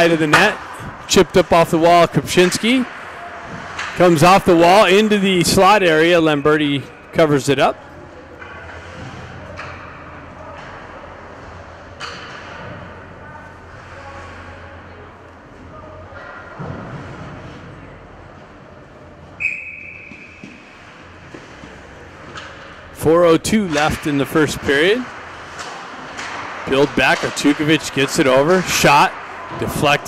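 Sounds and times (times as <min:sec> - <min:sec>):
referee's whistle blast: 0:19.4 - 0:20.4.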